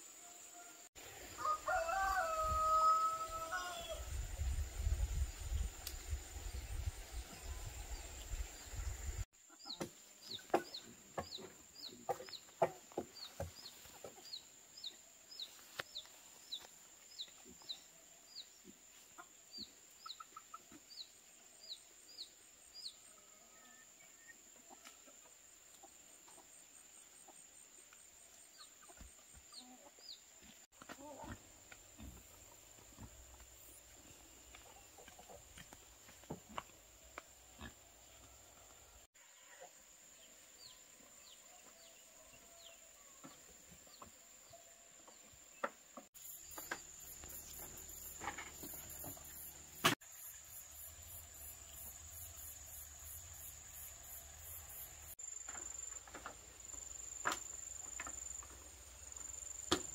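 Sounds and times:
rooster crowing: 1.3 - 4.1.

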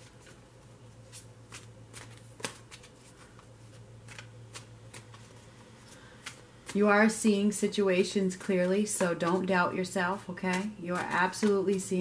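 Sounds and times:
cards shuffling by hand: 0.0 - 7.0, 10.2 - 12.0.

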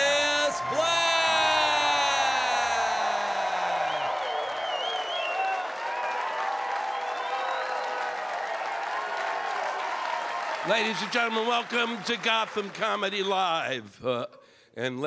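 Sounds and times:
announcer shouting: 0.0 - 3.8
high whoops: 0.0 - 10.6
audience clapping and cheering: 0.0 - 13.6.

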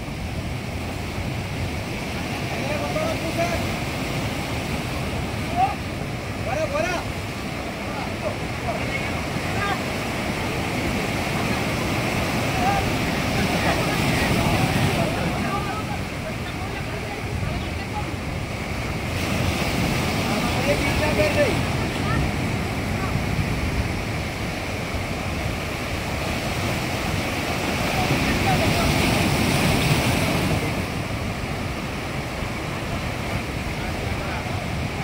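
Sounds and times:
surf breaking on shore: 0.0 - 35.0
wind buffeting microphone: 0.0 - 35.0.

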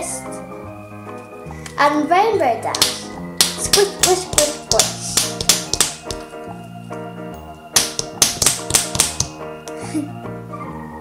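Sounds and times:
background music: 0.0 - 11.0
plastic toy tapping on table: 2.7 - 6.2, 7.8 - 9.3.

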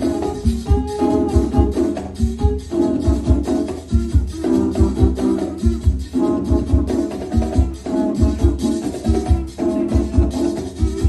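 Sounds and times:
bass drum beat: 0.0 - 11.0
conch shell horns in harmony: 0.0 - 11.0
congas: 0.0 - 11.0.

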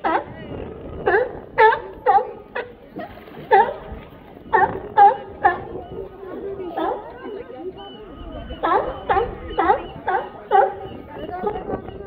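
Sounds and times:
sea lions barking and grunting: 0.0 - 12.0.

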